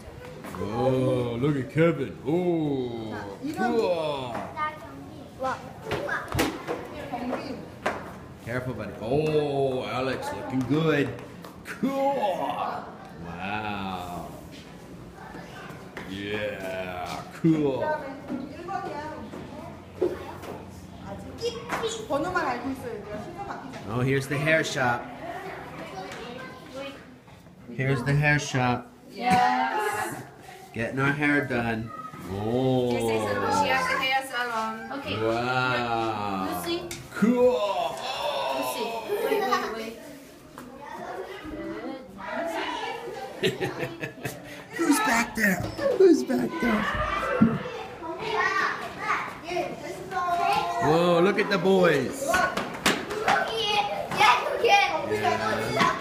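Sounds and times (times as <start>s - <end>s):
young children chattering: 0.0s - 8.4s, 9.8s - 56.0s
adult voice: 44.7s - 46.9s.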